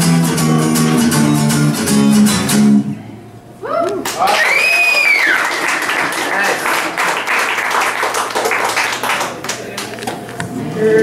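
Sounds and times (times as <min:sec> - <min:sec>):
high cheer: 0:03.6 - 0:09.0
audience clapping and cheering: 0:04.0 - 0:10.1.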